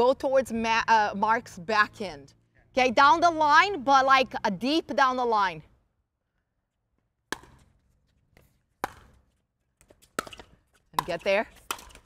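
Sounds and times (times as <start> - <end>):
pickleball paddles hitting ball: 7.3 - 7.8, 8.4 - 12.0.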